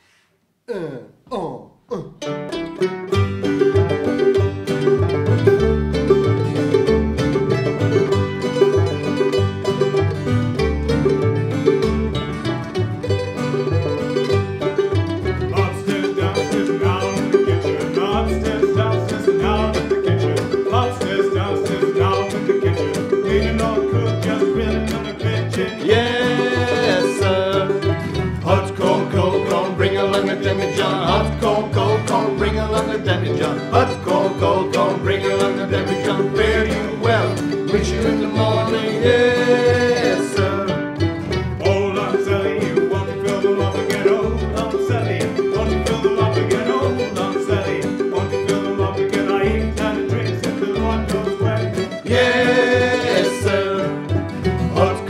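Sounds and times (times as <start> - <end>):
double bass plucking: 1.9 - 55.0
quick picked banjo notes: 2.1 - 55.0
string band playing up-tempo tune: 2.2 - 55.0.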